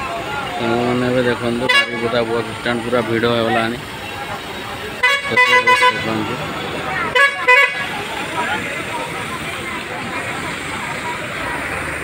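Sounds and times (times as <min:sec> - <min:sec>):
crowd chatter: 0:00.0 - 0:12.0
traffic noise: 0:00.0 - 0:12.0
vehicle horn toots: 0:01.6 - 0:02.2, 0:05.0 - 0:06.3, 0:07.0 - 0:08.0.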